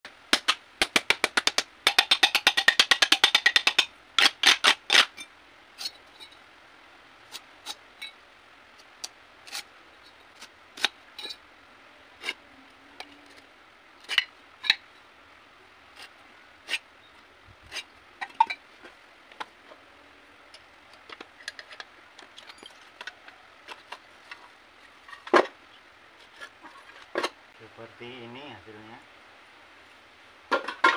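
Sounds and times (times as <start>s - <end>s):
hand tool tapping on metal: 0.4s - 3.9s.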